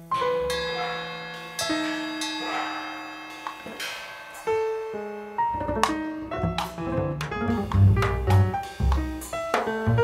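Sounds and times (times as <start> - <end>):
jazz piano notes: 0.0 - 10.0.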